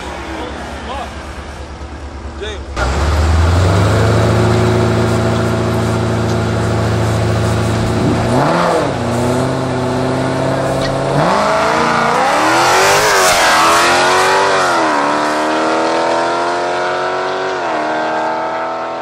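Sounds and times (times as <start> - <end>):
car engines idling: 0.0 - 15.8
cars accelerating hard: 2.7 - 19.0
engine revving: 2.7 - 19.0.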